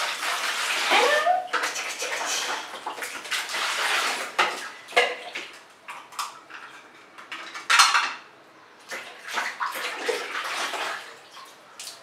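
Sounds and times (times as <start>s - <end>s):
water splashing and pouring: 0.0s - 6.8s, 8.9s - 12.0s.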